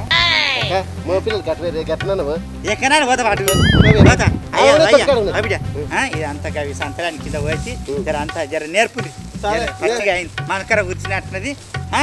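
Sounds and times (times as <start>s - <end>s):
low background music: 0.0s - 12.0s.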